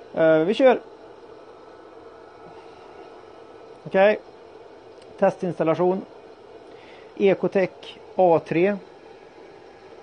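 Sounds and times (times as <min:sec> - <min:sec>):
machinery hum and hiss: 0:00.0 - 0:10.0.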